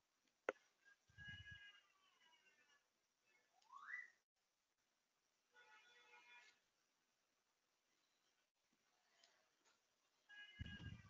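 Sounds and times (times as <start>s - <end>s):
rising whistle-like tone: 3.6s - 4.2s.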